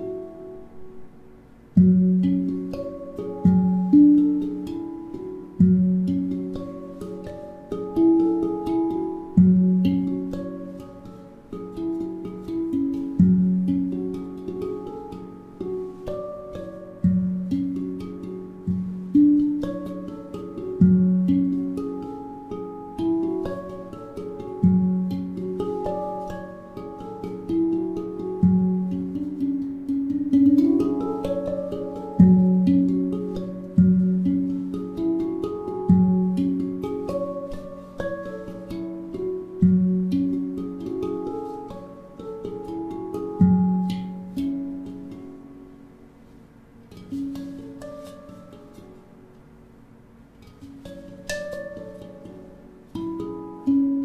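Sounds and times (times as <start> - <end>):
handpan notes ringing: 0.0 - 54.0.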